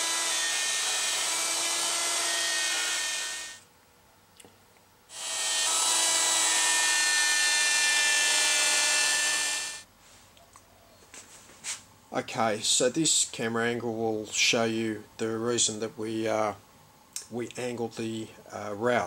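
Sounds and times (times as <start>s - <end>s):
router cutting wood: 0.0s - 3.6s, 5.1s - 9.8s.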